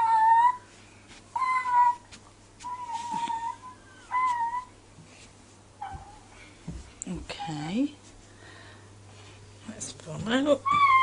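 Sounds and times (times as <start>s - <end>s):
small child calling: 1.4s - 4.7s, 10.6s - 11.0s.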